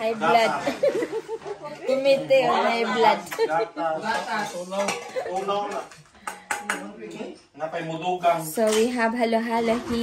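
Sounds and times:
women talking: 1.5s - 3.5s
tableware clinking: 4.0s - 7.3s.

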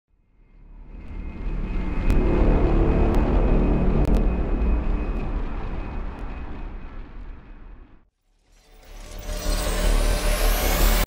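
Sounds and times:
deep rumbling swell: 0.8s - 8.1s.

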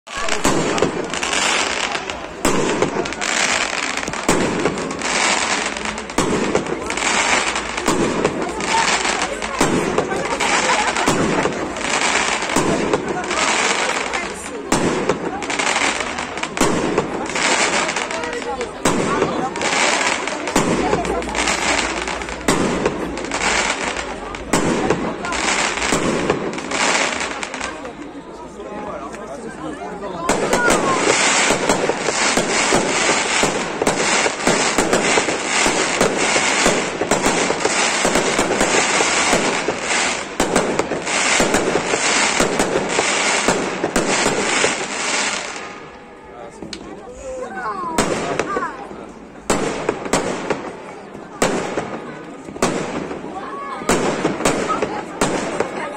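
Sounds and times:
fireworks bursting with sharp bangs: 0.0s - 55.9s.

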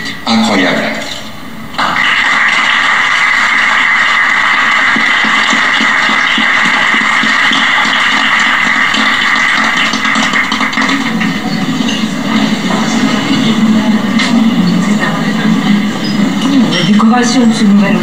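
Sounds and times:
audience applauding: 1.8s - 16.4s.

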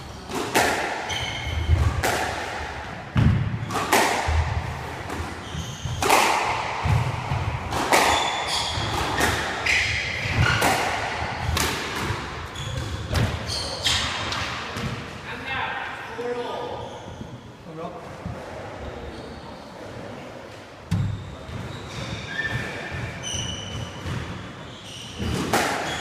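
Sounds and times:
squash ball hitting rackets: 0.2s - 15.1s, 25.2s - 26.0s
shoes squeaking on wooden floor: 5.4s - 6.1s, 12.5s - 14.1s.

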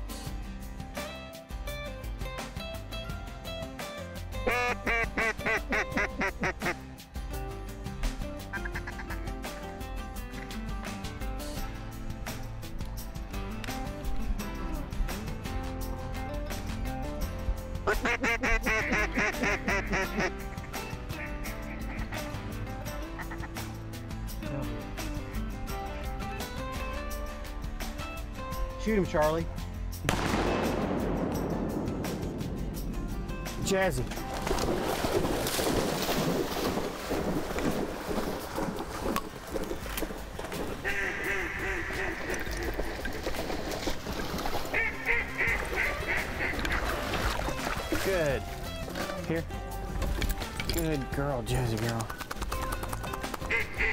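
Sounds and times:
background music: 0.0s - 53.9s
duck quacking: 4.4s - 6.8s, 8.5s - 9.2s, 17.8s - 22.3s, 40.8s - 42.7s, 44.7s - 47.3s, 53.4s - 53.9s
dog splashing through water: 34.2s - 40.8s, 42.2s - 48.6s.

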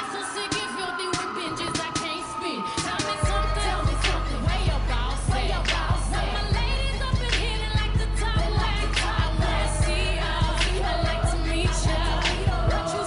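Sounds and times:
pop dance track with vocals: 0.0s - 13.0s.

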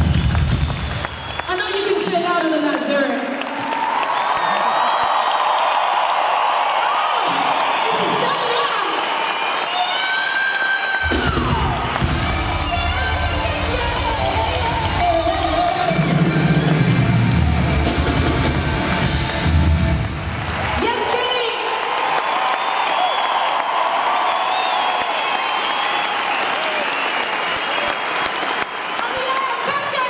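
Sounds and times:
heavy bass and drums: 0.0s - 1.0s, 11.1s - 20.3s
crowd cheering: 0.0s - 30.0s
live pop music: 9.6s - 20.1s.

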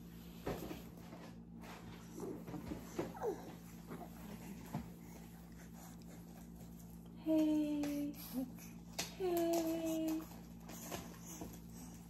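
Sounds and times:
steady low hum: 0.0s - 12.0s
baby whimpering: 3.0s - 4.6s.

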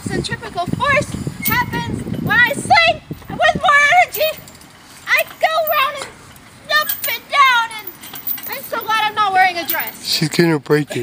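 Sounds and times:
high-pitched wordless squeals: 0.6s - 10.1s.

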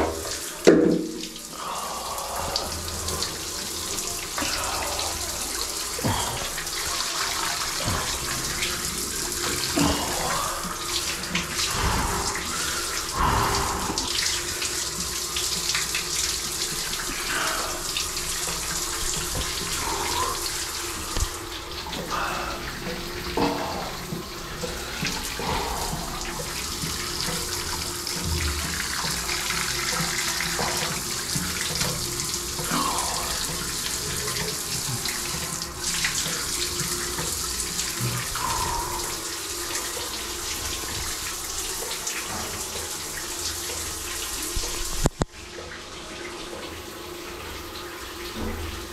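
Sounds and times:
shower water spraying: 0.0s - 48.9s.

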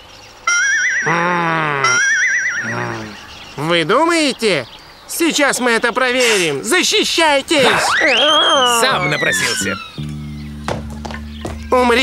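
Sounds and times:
high warbling trill: 7.7s - 12.0s
low held note: 8.9s - 12.0s.

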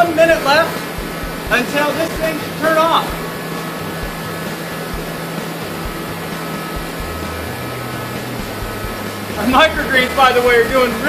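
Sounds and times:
forced-air heater blowing: 0.0s - 11.0s.

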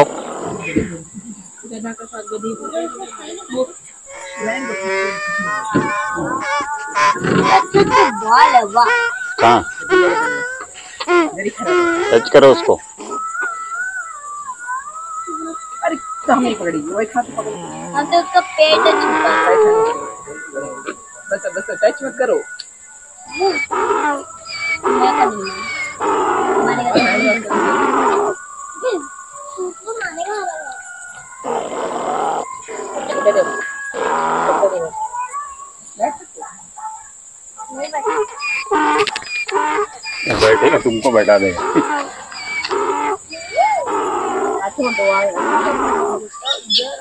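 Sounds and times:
donkey braying: 2.7s - 47.0s.

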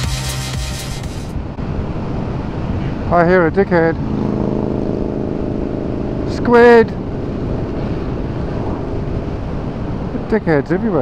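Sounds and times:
music track: 0.0s - 1.4s
motorcycle road and engine noise: 0.9s - 11.0s
wind rushing over microphone: 1.2s - 11.0s.

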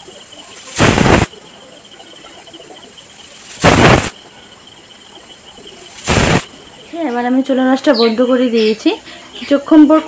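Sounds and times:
pressure cooker steam hissing: 0.6s - 1.3s, 3.6s - 4.2s, 6.0s - 6.5s.

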